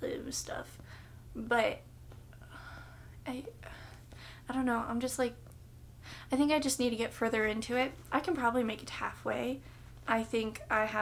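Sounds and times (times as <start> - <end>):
low steady hum: 0.0 - 11.0
woman breathing: 0.8 - 1.3, 2.3 - 4.5, 6.0 - 6.3
woman speaking softly: 3.2 - 3.7, 6.3 - 11.0.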